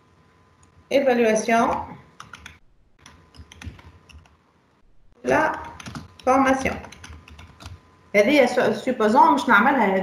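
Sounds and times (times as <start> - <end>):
computer keyboard typing: 1.5 - 4.4, 5.3 - 7.8.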